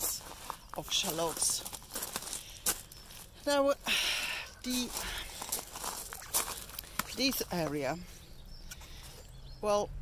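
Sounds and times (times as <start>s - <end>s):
footsteps on woodchip mulch: 0.0s - 3.8s, 4.6s - 8.0s.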